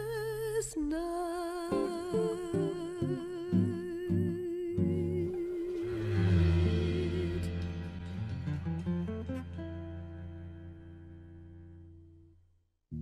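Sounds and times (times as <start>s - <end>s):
plucked guitar notes: 1.7s - 12.3s
voice singing long note: 4.8s - 8.3s.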